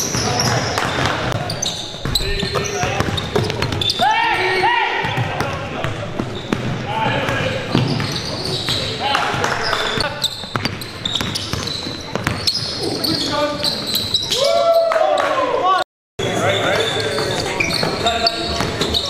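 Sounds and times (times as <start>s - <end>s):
sneaker squeaks: 0.0s - 14.8s, 16.3s - 19.0s
basketball bouncing on hardwood: 5.0s - 12.5s.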